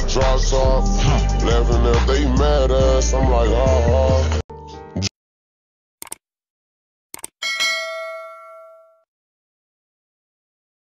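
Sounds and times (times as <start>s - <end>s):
mouse clicks: 7.2s - 7.4s
bell-like notification ding: 7.4s - 9.0s.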